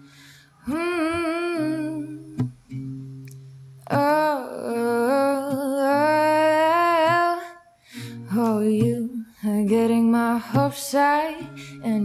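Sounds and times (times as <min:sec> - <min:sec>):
acoustic guitar: 0:00.0 - 0:12.0.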